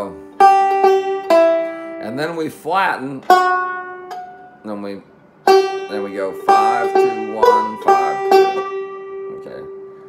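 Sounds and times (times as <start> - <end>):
banjo single notes: 0.0 - 10.0.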